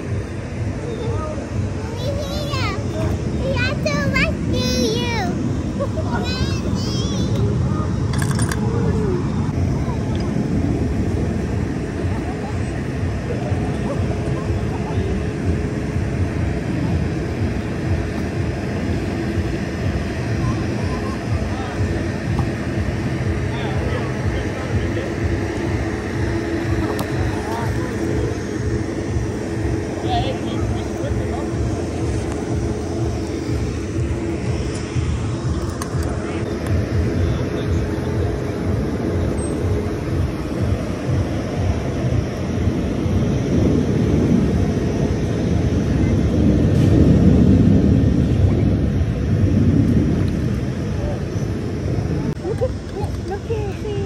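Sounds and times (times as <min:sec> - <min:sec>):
people's voices: 0:00.0 - 0:43.6, 0:50.1 - 0:54.0
loud rushing noise: 0:00.0 - 0:52.8
foam cannon droning hum: 0:00.0 - 0:54.0.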